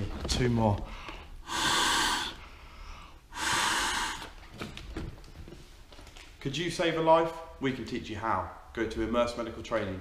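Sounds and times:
man blowing rescue breaths: 0:00.9 - 0:04.7.

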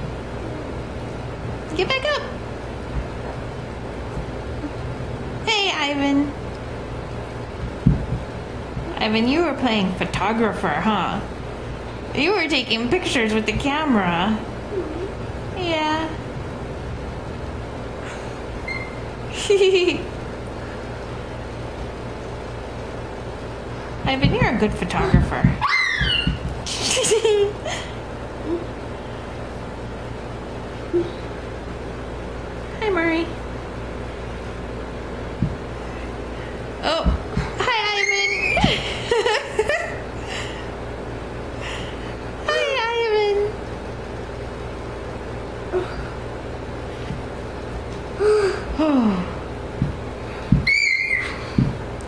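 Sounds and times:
low room hum and hiss: 0:00.0 - 0:52.0.

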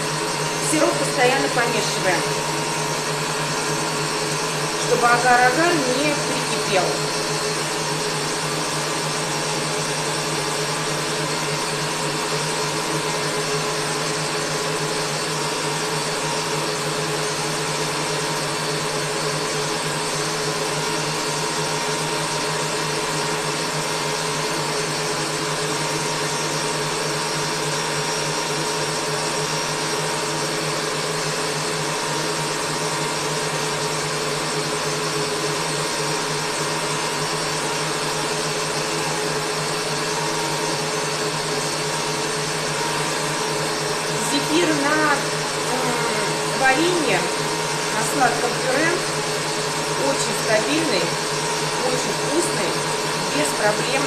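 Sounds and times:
electric stand mixer whining: 0:00.0 - 0:54.0.

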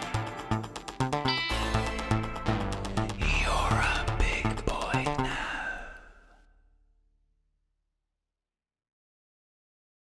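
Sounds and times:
closing musical chord: 0:01.2 - 0:04.8
breathy sung note: 0:01.3 - 0:06.6.

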